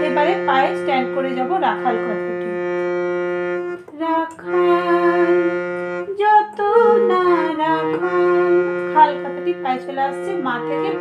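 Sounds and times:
harmonium melody with drone: 0.0s - 11.0s
person singing: 3.9s - 11.0s.

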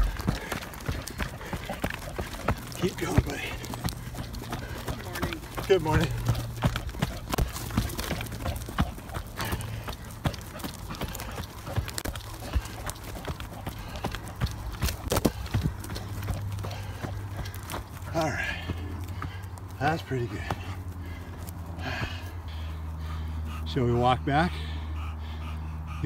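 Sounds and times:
running footsteps on dirt: 0.0s - 26.0s.

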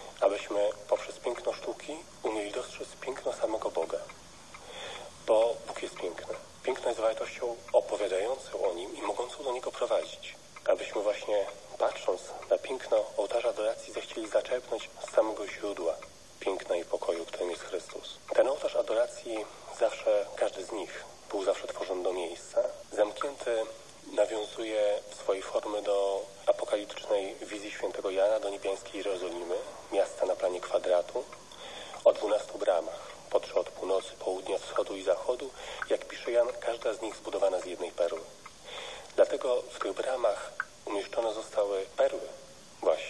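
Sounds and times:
radio broadcast speech: 0.0s - 43.0s.

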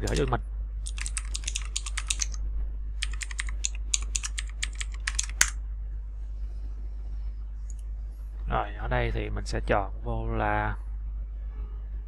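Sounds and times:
computer keyboard typing: 0.0s - 2.4s, 3.0s - 5.6s.

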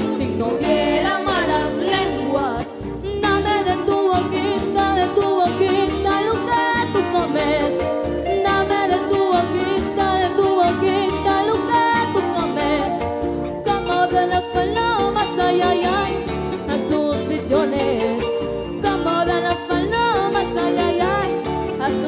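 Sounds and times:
girl singing with vibrato: 0.0s - 22.0s
live folk music with plucked strings: 0.0s - 22.0s.

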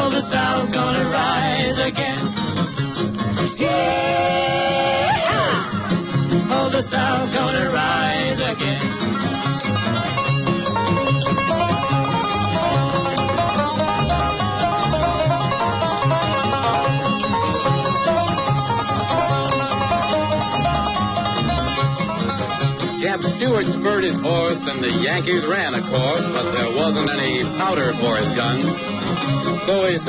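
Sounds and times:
plucked string instruments: 0.0s - 30.0s
pulsing bass line: 0.0s - 30.0s.

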